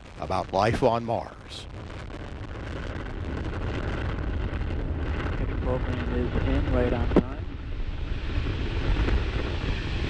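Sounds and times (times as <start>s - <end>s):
crackling hiss: 0.0s - 10.0s
rocket engine roar: 0.0s - 10.0s.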